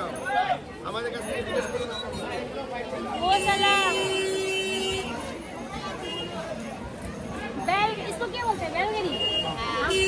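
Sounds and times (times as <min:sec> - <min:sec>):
people chattering and exclaiming: 0:00.0 - 0:10.0.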